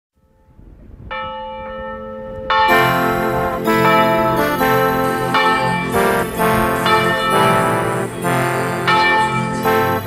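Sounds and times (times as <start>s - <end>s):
bell ringing: 1.2s - 10.0s.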